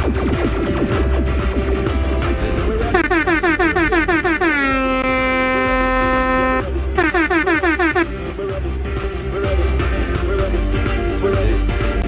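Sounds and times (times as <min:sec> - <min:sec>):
dance music with heavy bass: 0:00.0 - 0:12.0
air horn sound effect blasts: 0:02.9 - 0:08.2.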